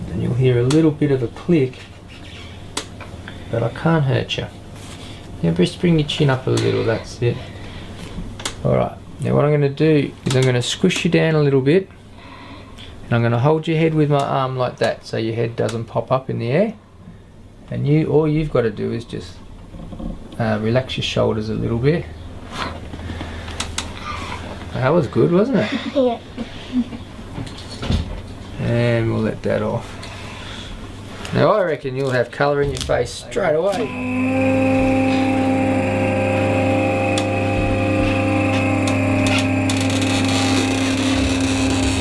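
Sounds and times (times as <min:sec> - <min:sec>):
steady low hum: 0:00.0 - 0:31.4, 0:33.2 - 0:42.0
electric motor humming: 0:33.7 - 0:42.0.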